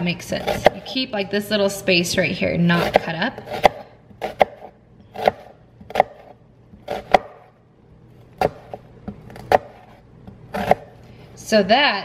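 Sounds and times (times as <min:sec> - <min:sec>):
knife chopping on wooden board: 0:00.4 - 0:00.9, 0:02.8 - 0:07.5, 0:08.4 - 0:10.9.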